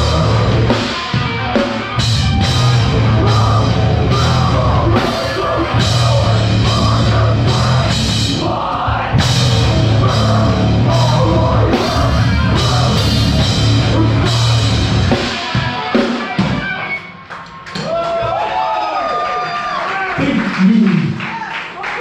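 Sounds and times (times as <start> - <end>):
live metal band playing: 0.0 - 17.9
drums and cymbals: 0.0 - 18.0.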